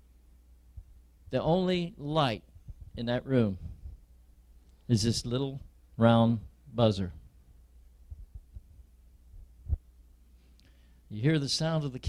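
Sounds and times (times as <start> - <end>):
steady low hum: 0.0 - 12.0
soft dull low thumps: 0.7 - 1.3, 2.5 - 3.0, 3.6 - 4.2, 7.2 - 10.0.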